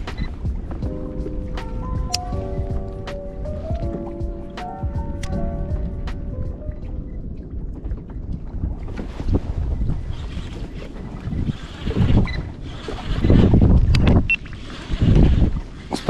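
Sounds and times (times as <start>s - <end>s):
wind buffeting microphone: 0.0s - 16.0s
water slapping against kayak hull: 7.3s - 16.0s.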